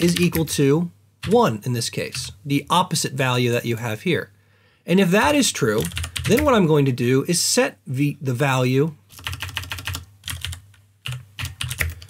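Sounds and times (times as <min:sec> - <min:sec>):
typing on computer keyboard: 0:05.8 - 0:06.6, 0:09.1 - 0:12.0.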